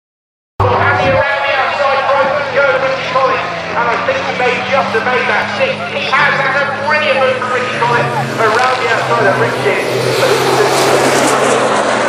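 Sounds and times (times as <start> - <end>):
distant truck engine drone: 0.6 - 12.0
race commentary over loudspeakers: 0.6 - 12.0.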